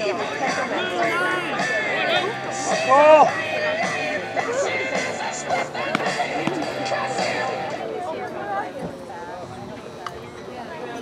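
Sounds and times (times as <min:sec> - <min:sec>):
people calling out: 0:00.0 - 0:07.8.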